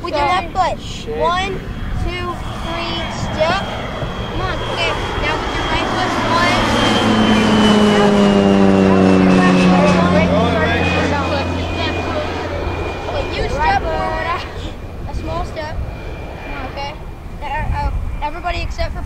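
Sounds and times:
passing engine drone: 0:00.0 - 0:18.4
boys' voices: 0:00.0 - 0:19.0.

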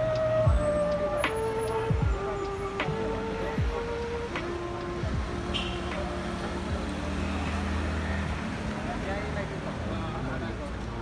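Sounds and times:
car engines running: 0:00.0 - 0:11.0
people's voices: 0:00.0 - 0:11.0.

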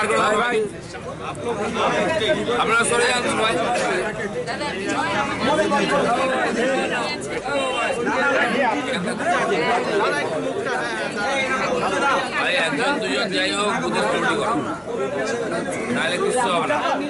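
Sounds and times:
people talking at once: 0:00.0 - 0:17.0.

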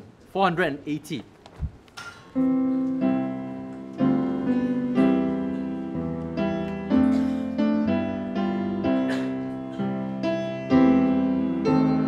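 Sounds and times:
piano playing hymn chords: 0:02.3 - 0:12.0.

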